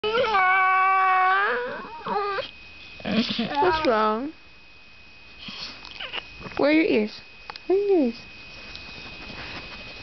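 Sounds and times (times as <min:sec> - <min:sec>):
dog howling: 0:00.0 - 0:02.5.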